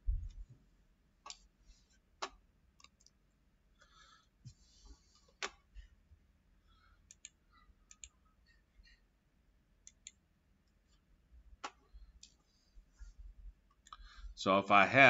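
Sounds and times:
computer mouse clicking: 1.2s - 1.4s, 2.2s - 3.2s, 7.1s - 8.2s, 9.8s - 10.2s.

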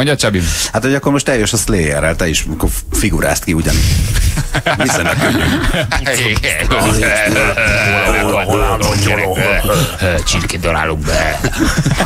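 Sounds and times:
radio speech: 4.8s - 11.5s.

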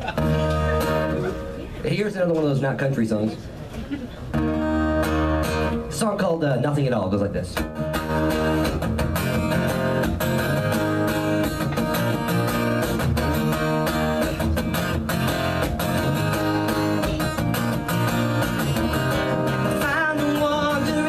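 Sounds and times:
acoustic guitar strumming chords: 0.2s - 1.7s, 4.3s - 6.3s, 7.6s - 21.0s.

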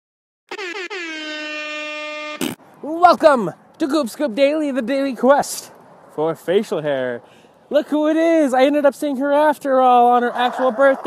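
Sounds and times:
air horn blasts: 0.5s - 2.6s.

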